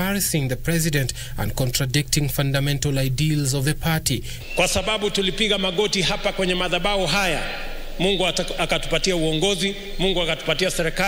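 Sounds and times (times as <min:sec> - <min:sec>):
man speaking into microphones: 0:00.0 - 0:11.0.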